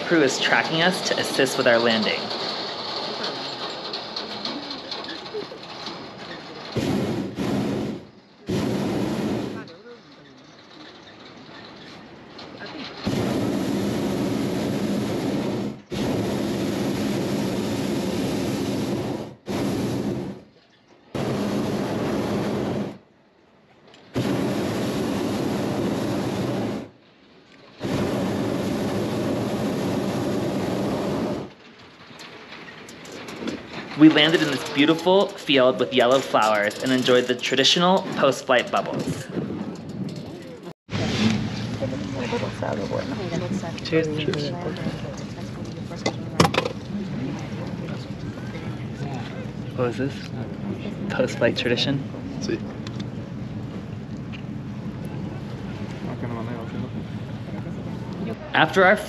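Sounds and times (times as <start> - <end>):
propane burner blasts: 0.0 - 11.1, 12.7 - 23.2, 24.0 - 27.0, 27.7 - 32.2, 32.9 - 59.0.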